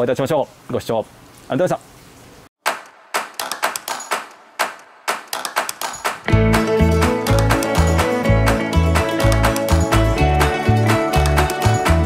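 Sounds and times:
sharp clicks or claps: 2.7 - 6.3, 7.0 - 8.2, 8.9 - 10.2, 11.0 - 12.0.

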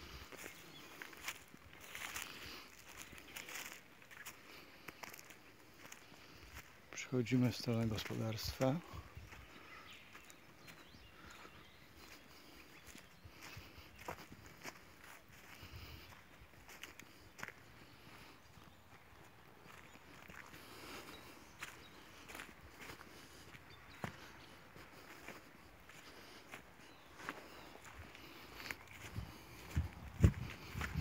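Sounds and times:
footsteps on grass and leaves: 0.0 - 31.0.

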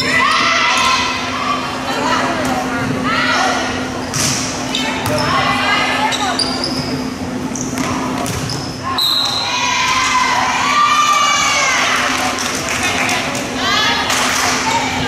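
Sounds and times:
crowd and players shouting: 0.0 - 3.9, 8.8 - 15.0
crowd cheering: 9.2 - 15.0.

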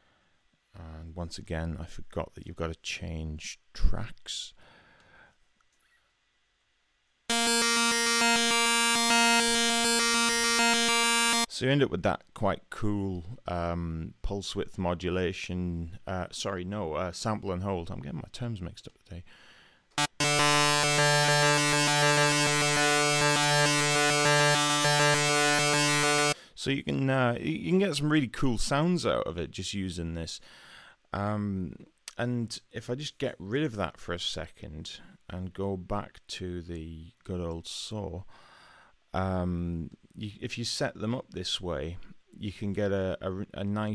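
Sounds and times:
synthesizer note with stepping timbre: 7.3 - 11.5, 20.0 - 26.4.

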